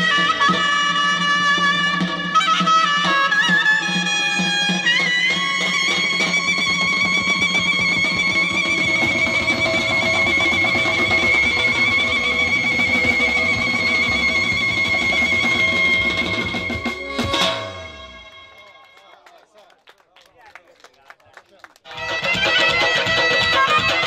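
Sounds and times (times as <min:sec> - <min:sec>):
drum kit: 0:00.0 - 0:18.3, 0:21.9 - 0:24.0
clarinet long high note: 0:00.0 - 0:19.0
keyboard: 0:00.0 - 0:19.3, 0:21.9 - 0:24.0.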